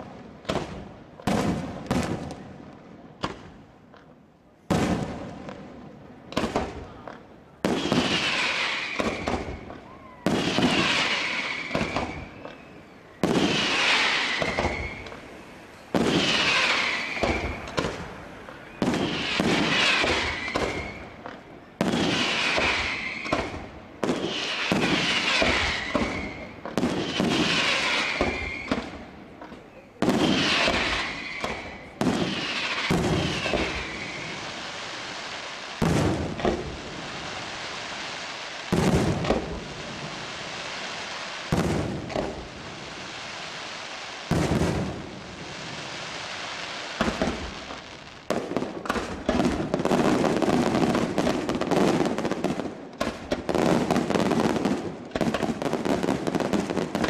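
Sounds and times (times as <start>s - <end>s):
firework shells bursting: 7.7s - 34.5s.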